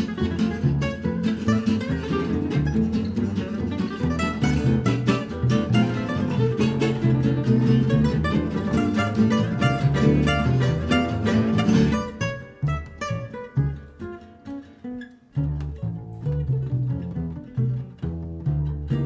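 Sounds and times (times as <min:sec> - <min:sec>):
acoustic guitar fast melody: 0:00.0 - 0:19.0
plucked double bass: 0:00.0 - 0:19.0
strummed rhythm guitar: 0:00.0 - 0:19.0.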